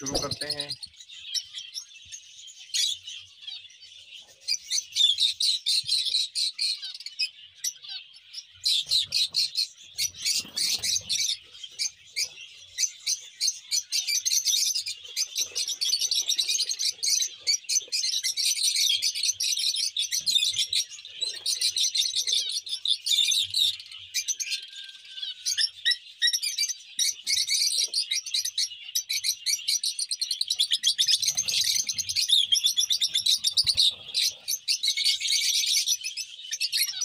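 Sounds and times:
lovebirds chattering: 0.0 - 37.0.

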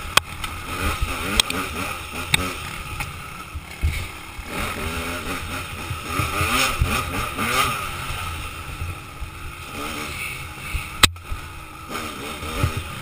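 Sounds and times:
dirt bike engine revving: 0.0 - 13.0.

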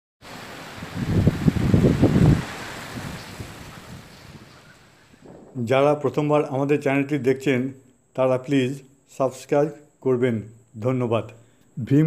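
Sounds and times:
rain: 0.2 - 5.6
wind: 0.2 - 12.0
low rumble of thunder: 0.8 - 6.0.

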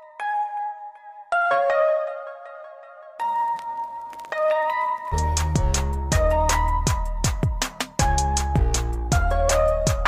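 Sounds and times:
electronic music with ringing notes: 0.0 - 10.0.

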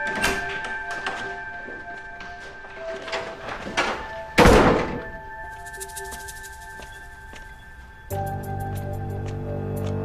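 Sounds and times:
tense background music: 0.0 - 10.0
heavy door thud: 3.7 - 5.2.

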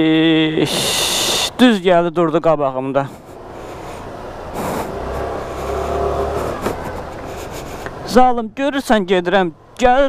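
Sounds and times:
street traffic noise: 0.0 - 10.0
motor scooter accelerating: 3.2 - 8.1.

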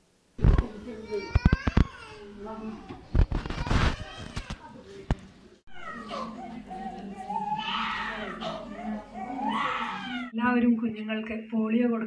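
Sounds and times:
infant crying: 5.7 - 10.4.

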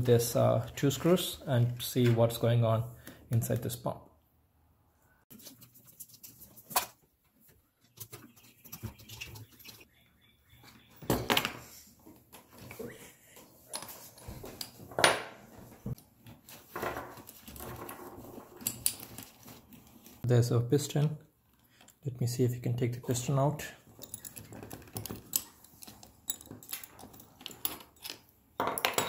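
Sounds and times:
metal parts clinking and scraping: 23.9 - 29.0.

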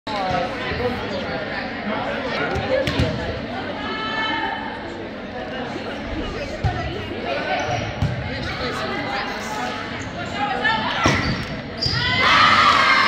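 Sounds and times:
echoing gymnasium chatter: 0.1 - 13.0.

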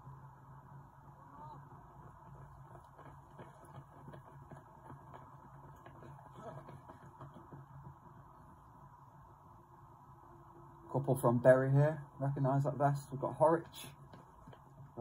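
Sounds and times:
low steady hum: 0.0 - 15.0
running footsteps on tarmac: 1.1 - 10.2, 10.9 - 15.0.

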